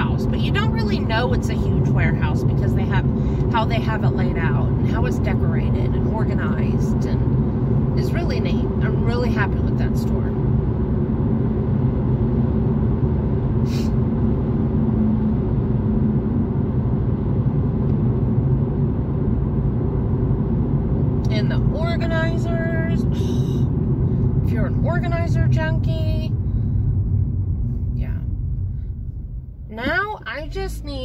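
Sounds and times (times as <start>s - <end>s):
car cabin road rumble: 0.0s - 31.0s.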